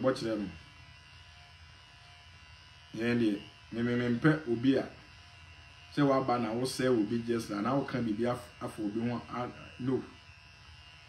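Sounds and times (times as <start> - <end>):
faint electrical buzz and hum: 0.0 - 11.0.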